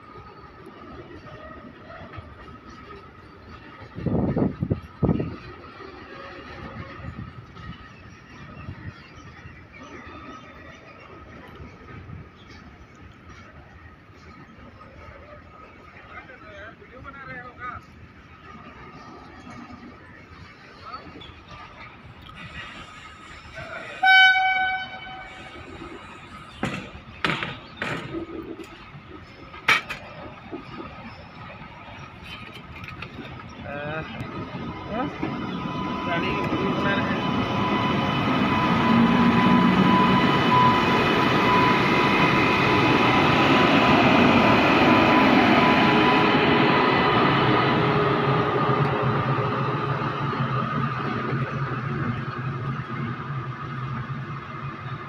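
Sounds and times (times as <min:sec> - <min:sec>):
goods train rolling past: 0:00.0 - 0:55.0
short train horn toot: 0:24.0 - 0:25.6
steady high tone: 0:34.7 - 0:50.3.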